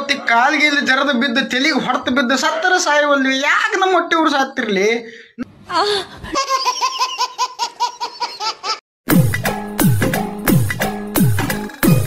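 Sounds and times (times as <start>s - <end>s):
high-pitched laughter: 6.3s - 8.8s.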